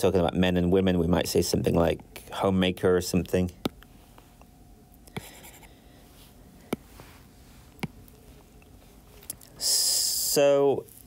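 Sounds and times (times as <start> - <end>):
stylus tapping on a screen: 6.7 - 6.9, 7.8 - 8.2.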